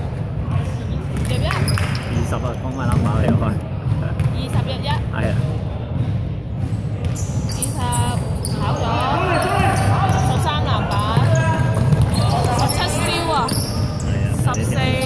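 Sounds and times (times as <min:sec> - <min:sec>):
shoe squeaks on court: 0:01.2 - 0:03.3, 0:07.0 - 0:15.0
basketball bouncing: 0:02.8 - 0:08.7, 0:09.4 - 0:13.6
people shouting: 0:08.6 - 0:13.5.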